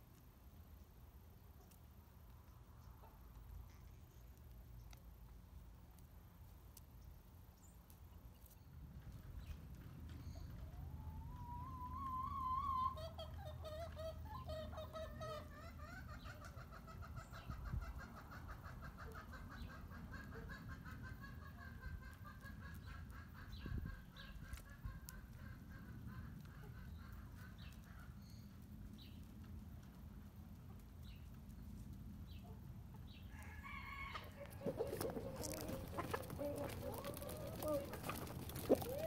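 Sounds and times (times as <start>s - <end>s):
chickens calling: 10.4s - 28.2s, 32.3s - 39.0s.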